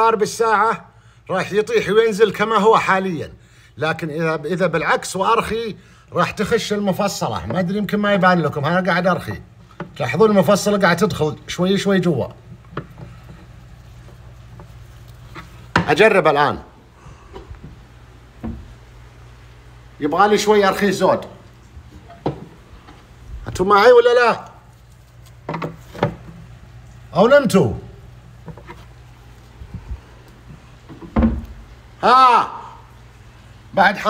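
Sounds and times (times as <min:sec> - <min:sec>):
man talking: 0:00.0 - 0:12.4, 0:15.8 - 0:16.8, 0:20.0 - 0:21.4, 0:23.4 - 0:24.6, 0:27.1 - 0:28.0, 0:32.0 - 0:32.8, 0:33.7 - 0:34.0
low steady hum: 0:00.0 - 0:34.0.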